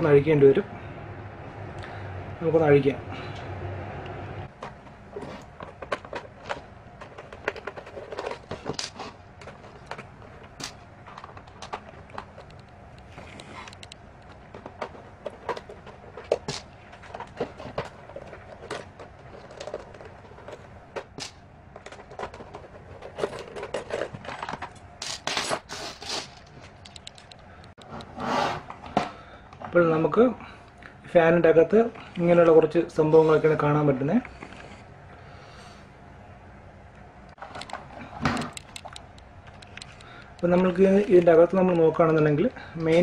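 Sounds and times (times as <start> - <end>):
plastic housing clicking and rattling: 4.6 - 24.9, 26.7 - 27.9, 37.4 - 42.2
clicks and scrapes of metal on plastic: 4.6 - 28.2.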